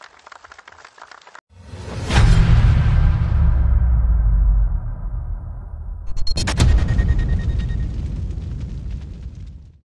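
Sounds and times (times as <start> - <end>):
sharp boom with rumble: 1.7 - 9.8.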